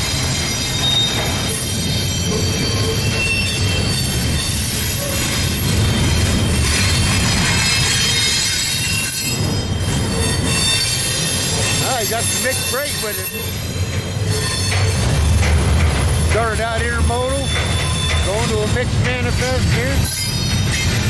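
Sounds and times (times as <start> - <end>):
train wheels rolling on rail: 0.0 - 21.0
wheel flanges squealing: 0.0 - 21.0.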